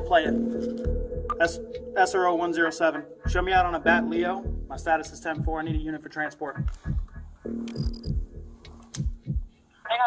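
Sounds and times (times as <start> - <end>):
low throbbing beat: 0.0 - 2.1, 3.2 - 6.0, 6.6 - 9.6.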